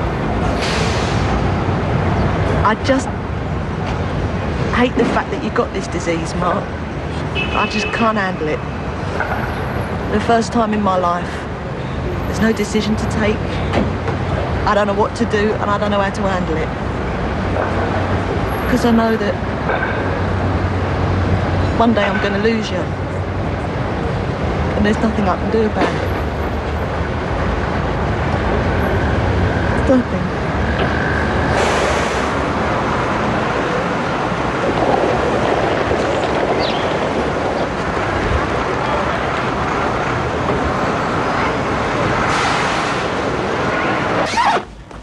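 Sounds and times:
street traffic: 0:00.0 - 0:45.0
woman speaking: 0:10.1 - 0:11.4, 0:12.3 - 0:13.4, 0:29.8 - 0:30.4.

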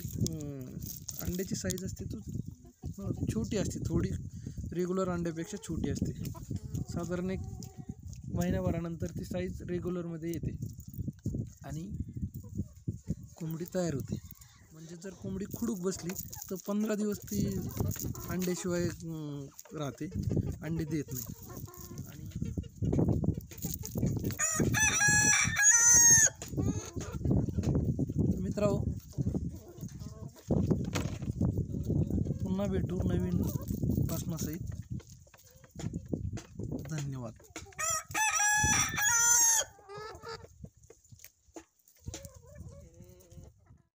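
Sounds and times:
hens clucking: 0:00.0 - 0:03.9, 0:04.8 - 0:10.0, 0:11.3 - 0:43.9
hens pecking on gravel: 0:00.0 - 0:43.9
rooster crowing: 0:24.4 - 0:26.4, 0:37.8 - 0:39.7.

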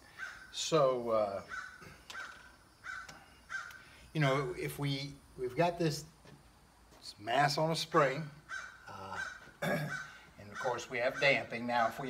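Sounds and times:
bird calling: 0:00.0 - 0:04.6, 0:08.3 - 0:12.0.

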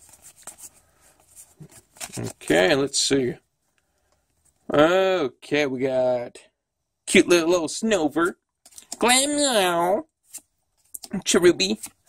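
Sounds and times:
trading cards shuffling: 0:00.0 - 0:02.6, 0:08.6 - 0:09.2, 0:10.2 - 0:12.0.

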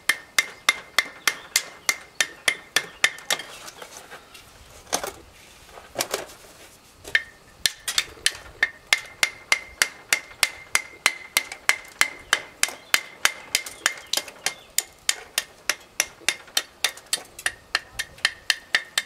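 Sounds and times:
hammer tapping stone: 0:08.6 - 0:19.0.

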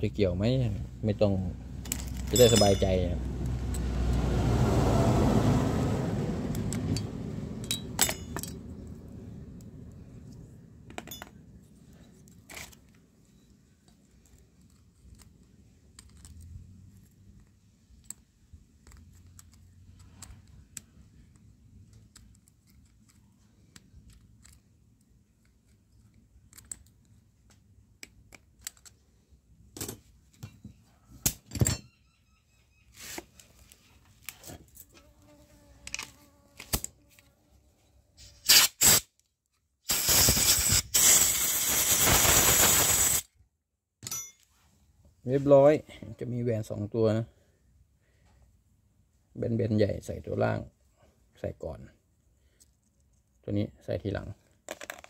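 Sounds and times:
low background rumble: 0:06.2 - 0:12.1
compressed air blow gun hissing: 0:39.9 - 0:43.2.

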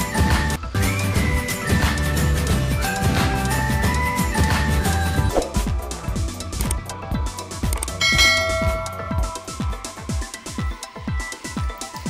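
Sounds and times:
electronic music with kick drum: 0:01.7 - 0:12.0
bright bell chime: 0:08.0 - 0:10.0.

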